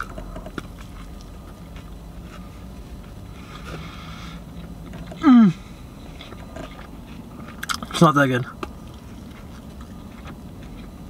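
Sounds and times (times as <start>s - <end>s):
low steady hum: 0.0s - 11.0s
person chewing: 0.0s - 11.0s.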